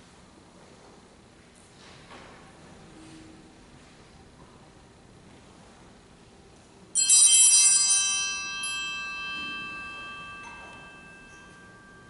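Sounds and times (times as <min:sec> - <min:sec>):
altar bell ringing: 0:07.0 - 0:12.0.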